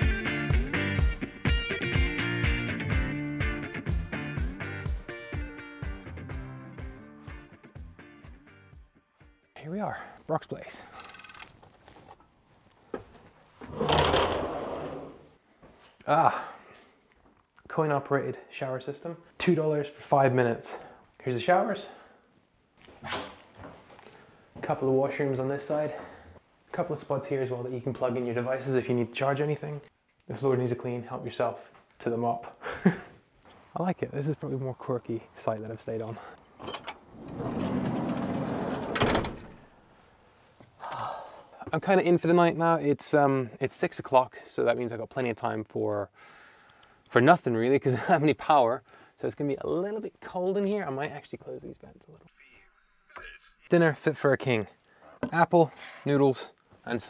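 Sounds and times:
door scraping and rattling: 13.6s - 15.3s, 36.6s - 39.8s.

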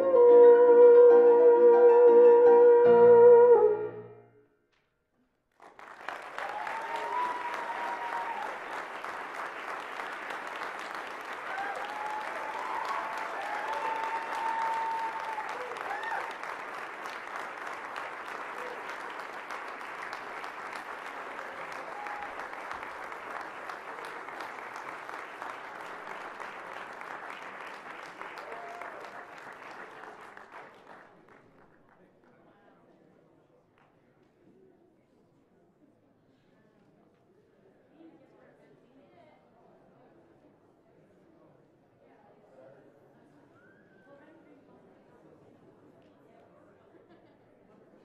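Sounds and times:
audience applauding: 5.5s - 32.1s.

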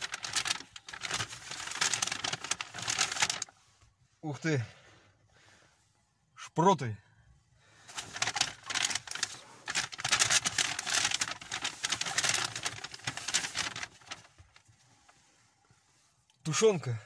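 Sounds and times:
paper bag rustling: 0.0s - 3.6s, 7.8s - 14.8s.

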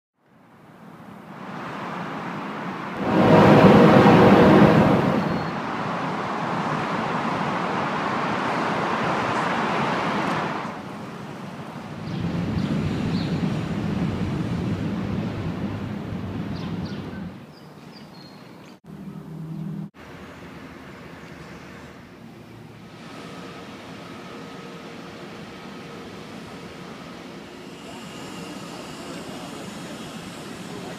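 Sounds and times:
road traffic noise: 0.3s - 30.9s.

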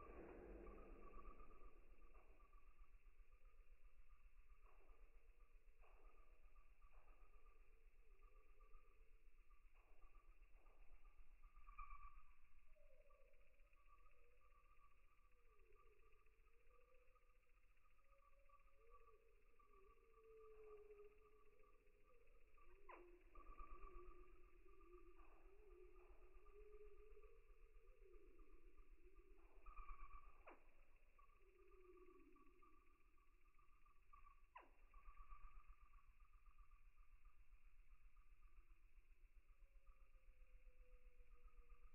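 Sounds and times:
faint steady hum: 0.0s - 41.9s
faint wavering tones: 0.0s - 41.9s.

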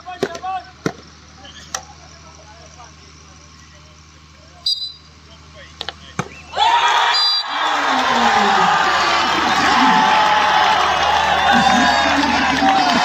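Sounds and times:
referee's whistle blast: 4.6s - 5.1s, 6.3s - 7.6s
crowd chatter: 5.4s - 13.0s.

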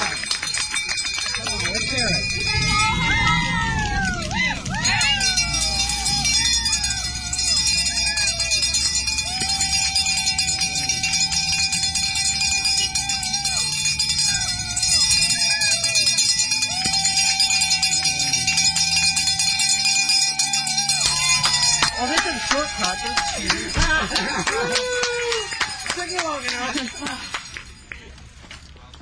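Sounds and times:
spectators whooping: 0.0s - 27.3s
noisemakers jingling rattle: 0.0s - 29.0s.

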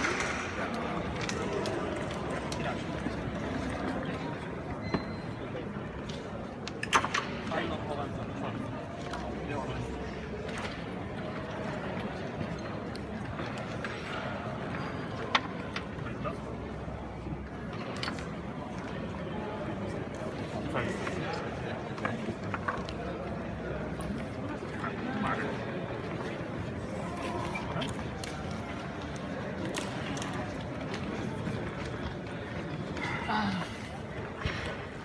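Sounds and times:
chatter of voices in a hall: 0.0s - 35.0s.

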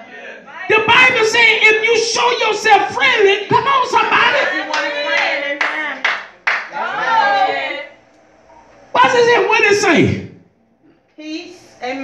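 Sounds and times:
rhythmic hand claps: 4.6s - 6.8s.

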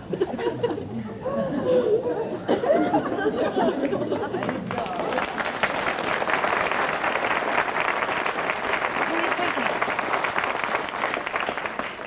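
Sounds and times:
audience laughing: 0.0s - 5.1s
audience applause: 3.6s - 12.0s.

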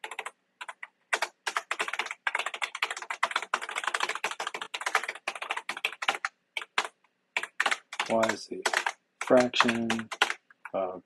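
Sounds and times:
fast typing on computer keyboard: 0.0s - 10.4s.

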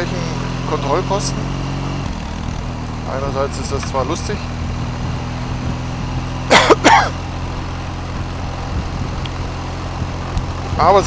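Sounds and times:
motorcycle engine running: 0.0s - 11.0s
road noise: 0.0s - 11.0s
person coughing: 6.5s - 7.2s.

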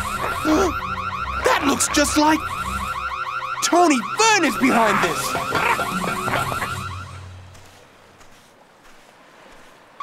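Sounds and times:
electronic alarm warbling chirps: 0.0s - 7.3s.

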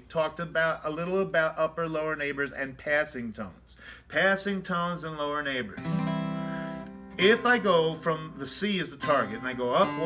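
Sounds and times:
man's voice: 0.0s - 5.9s, 7.2s - 10.0s
acoustic guitar ringing: 5.8s - 10.0s.

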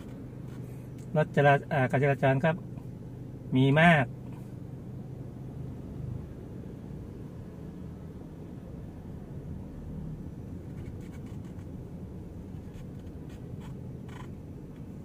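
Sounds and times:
car engine and tyres rumbling: 0.0s - 15.0s.

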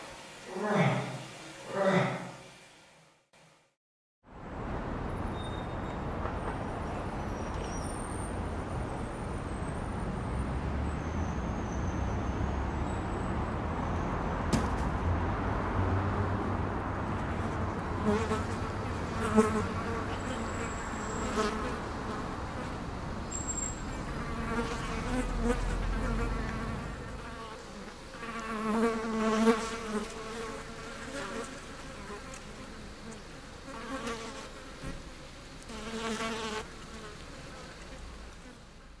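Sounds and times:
flies buzzing: 17.1s - 22.9s, 23.8s - 38.6s.

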